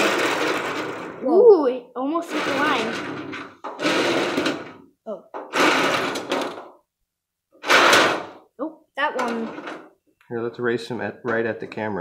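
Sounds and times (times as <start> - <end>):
toy cars rattling in metal tray: 0.0 - 1.4, 2.2 - 4.8, 5.5 - 6.7, 7.6 - 8.4, 9.2 - 9.9.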